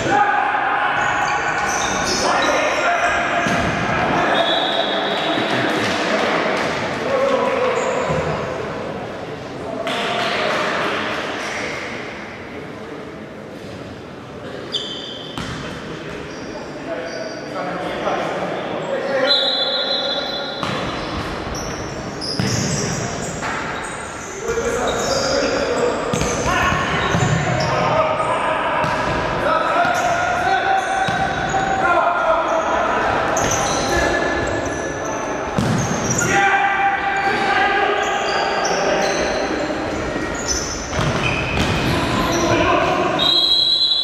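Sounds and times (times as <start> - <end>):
players shouting: 0.0 - 5.7, 35.8 - 39.7
shoes squeaking on court floor: 1.0 - 2.6, 7.7 - 8.6, 14.6 - 17.5, 19.0 - 27.9, 30.8 - 31.8, 32.4 - 36.4, 37.2 - 44.0.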